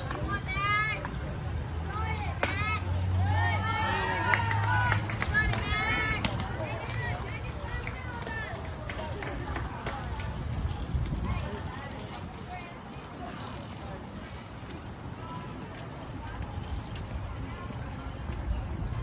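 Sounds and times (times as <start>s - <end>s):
people shouting and calling out: 1.9s - 9.2s.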